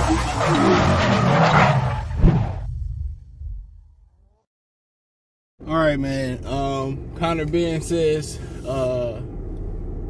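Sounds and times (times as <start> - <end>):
car tyre screeching: 0.0 - 2.6
low rumble: 1.9 - 4.3.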